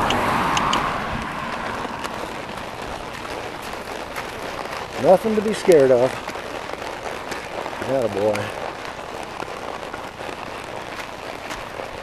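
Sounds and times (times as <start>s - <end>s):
car passing tyre and road noise: 0.0s - 12.0s.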